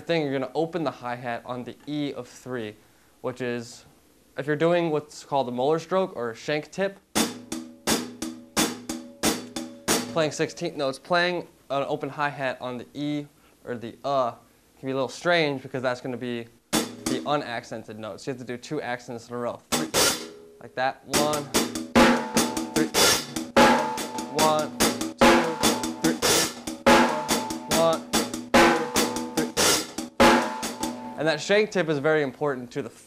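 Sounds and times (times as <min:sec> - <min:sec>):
drum kit playing rock groove: 0:07.1 - 0:10.5, 0:16.7 - 0:17.3, 0:19.7 - 0:20.4, 0:21.1 - 0:31.2
open hi-hat wash: 0:07.1 - 0:10.6, 0:16.7 - 0:17.6, 0:19.7 - 0:20.4, 0:21.1 - 0:31.5.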